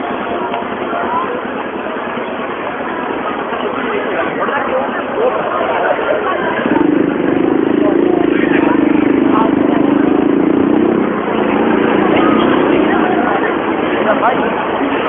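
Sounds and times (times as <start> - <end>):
street crowd chatter: 0.0 - 15.0
motorcycle engine running: 5.9 - 15.0.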